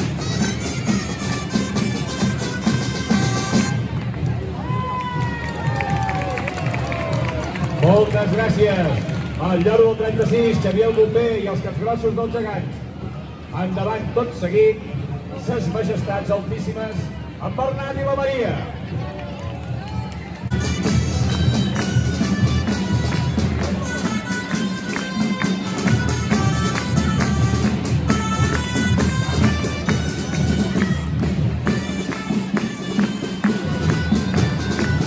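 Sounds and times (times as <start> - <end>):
wind instrument: 0.0 - 8.4, 17.9 - 35.0
street crowd noise: 0.0 - 35.0
man speaking over public address: 7.7 - 12.9, 13.5 - 19.0.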